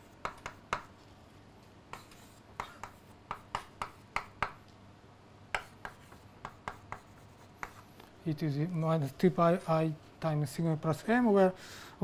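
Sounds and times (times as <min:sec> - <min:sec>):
chalk writing on blackboard: 0:00.0 - 0:01.0, 0:01.9 - 0:04.6, 0:05.5 - 0:08.0.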